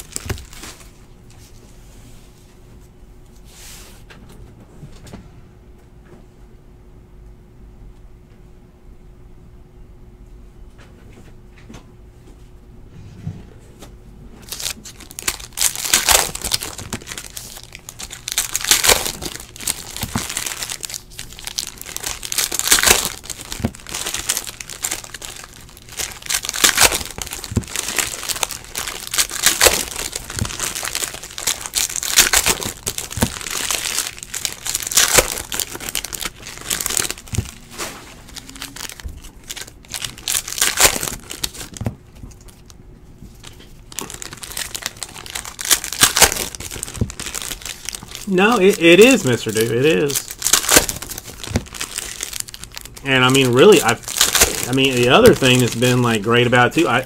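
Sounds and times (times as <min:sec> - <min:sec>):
foil wrappers crinkling and tearing: 0:00.0 - 0:01.0, 0:14.4 - 0:57.0.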